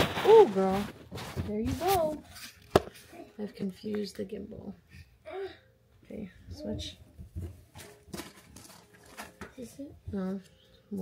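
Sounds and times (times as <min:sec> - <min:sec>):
items rummaged in a handbag: 0:00.0 - 0:02.6, 0:07.4 - 0:09.7
soft rustling: 0:00.0 - 0:04.2.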